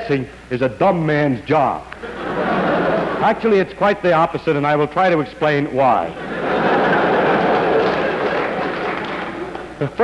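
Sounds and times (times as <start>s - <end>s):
audience laughing: 2.0s - 3.5s, 6.1s - 9.8s
audience applauding: 6.3s - 9.9s.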